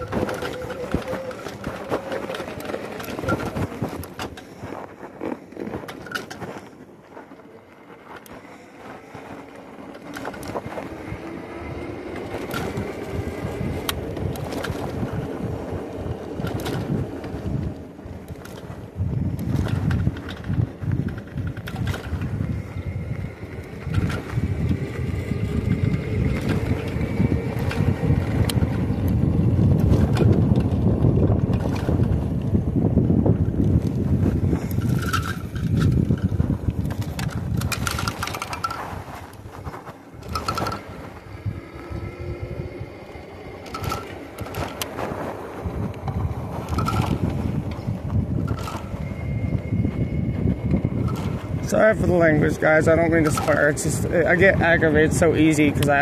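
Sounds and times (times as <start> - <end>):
tyre rumble on pavement: 0.0 - 43.6
bike clicks and knocks: 0.0 - 56.0
faint steady whine: 0.0 - 56.0
wind buffeting microphone: 0.0 - 56.0.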